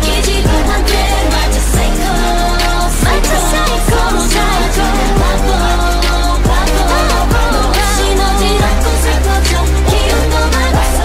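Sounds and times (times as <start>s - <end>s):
female vocal over a beat: 0.0s - 11.0s
sliding bass notes: 0.0s - 11.0s.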